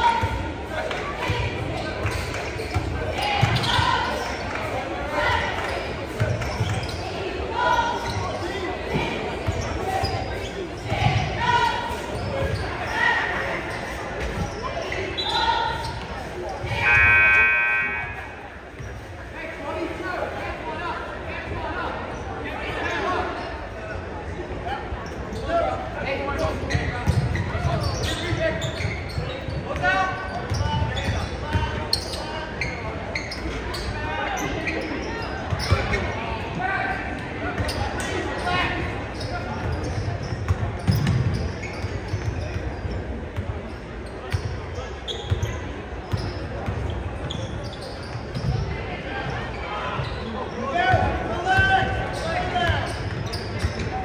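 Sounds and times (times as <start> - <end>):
voices echoing in gym: 0.0 - 54.0.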